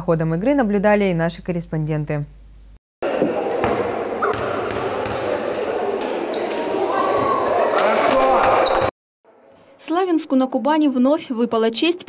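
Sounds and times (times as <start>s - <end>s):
basketball bouncing on court: 3.1s - 7.4s.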